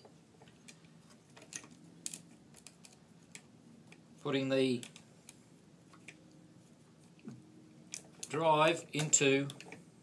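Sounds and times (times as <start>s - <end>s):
faint clicks and metal taps: 0.0s - 4.1s, 4.7s - 6.4s, 9.0s - 9.9s.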